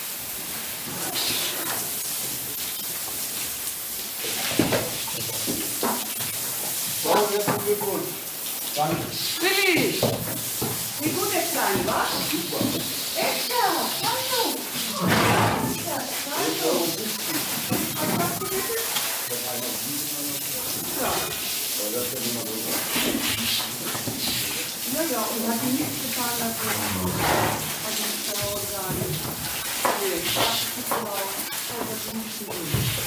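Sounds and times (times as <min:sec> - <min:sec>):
water hose spraying: 0:00.0 - 0:33.0
people talking: 0:07.0 - 0:08.2, 0:11.0 - 0:23.5, 0:24.3 - 0:27.2, 0:27.8 - 0:33.0.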